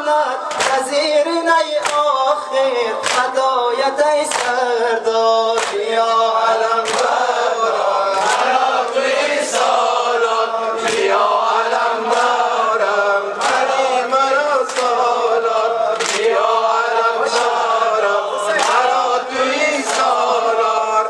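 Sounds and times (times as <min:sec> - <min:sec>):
men chanting into a microphone: 0:00.0 - 0:21.0
chest-beating slaps: 0:00.5 - 0:00.8, 0:03.0 - 0:03.3, 0:05.6 - 0:05.8, 0:06.8 - 0:07.2, 0:08.2 - 0:09.8, 0:10.8 - 0:11.3, 0:12.1 - 0:12.5, 0:13.3 - 0:13.8, 0:14.6 - 0:15.1, 0:16.0 - 0:16.6, 0:18.5 - 0:18.9, 0:19.8 - 0:20.2.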